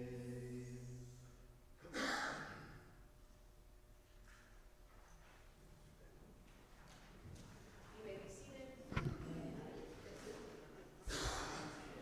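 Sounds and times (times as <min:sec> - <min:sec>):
breathy exhale: 0:11.1 - 0:11.8.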